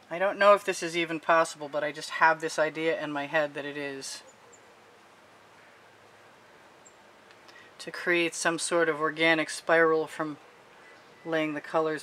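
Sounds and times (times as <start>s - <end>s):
faint background hiss: 0.0s - 12.0s
faint high chirp: 10.4s - 11.6s.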